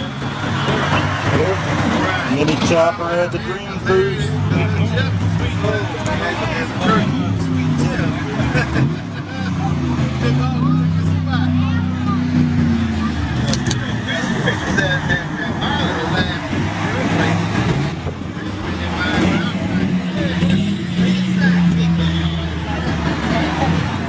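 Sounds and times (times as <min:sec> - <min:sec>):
car engines in passing traffic: 0:00.0 - 0:24.0
people talking: 0:00.0 - 0:24.0.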